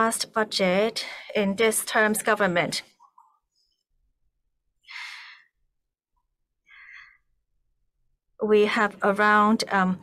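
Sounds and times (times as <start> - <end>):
man breathing: 4.8 - 5.6, 6.6 - 7.4.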